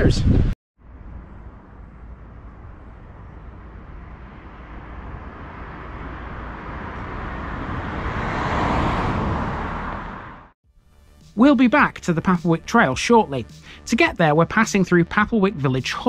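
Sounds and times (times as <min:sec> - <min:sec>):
vehicle passing by: 0:00.8 - 0:10.6.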